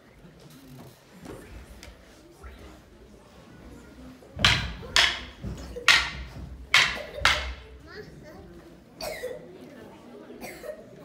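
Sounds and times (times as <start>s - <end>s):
wooden sticks clacking: 4.4s - 7.8s.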